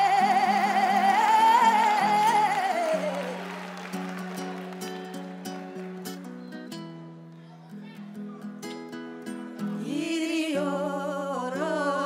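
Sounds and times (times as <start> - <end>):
acoustic guitar picking notes: 0.0 - 12.0.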